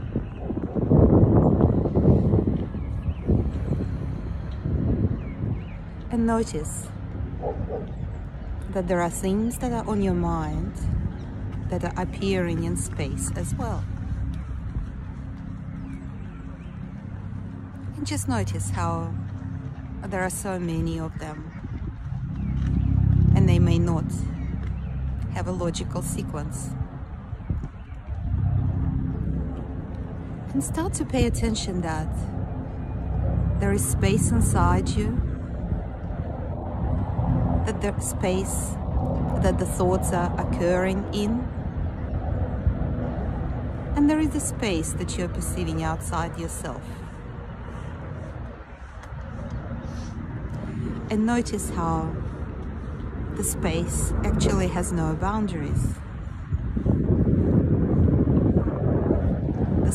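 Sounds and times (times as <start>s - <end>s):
low rumble of outdoor background: 0.0s - 59.9s
wind buffeting microphone: 0.0s - 59.9s.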